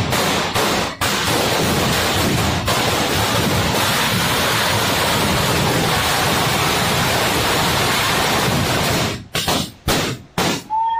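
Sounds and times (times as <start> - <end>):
firecrackers crackling: 0.0 - 10.8.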